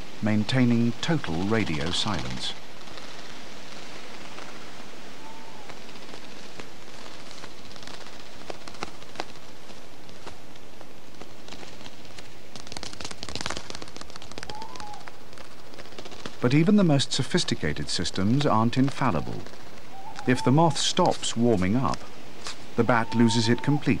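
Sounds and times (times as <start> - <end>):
crackles and clicks: 0.0 - 24.0
steady hiss: 0.0 - 24.0.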